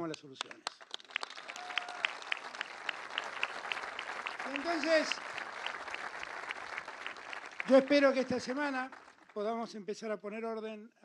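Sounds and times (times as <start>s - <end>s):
audience applauding: 0.4s - 9.6s.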